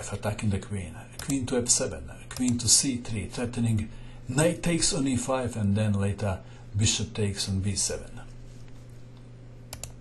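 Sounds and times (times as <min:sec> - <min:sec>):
faint electrical hum: 0:00.0 - 0:10.0
computer mouse clicks: 0:01.2 - 0:01.4, 0:09.2 - 0:10.0.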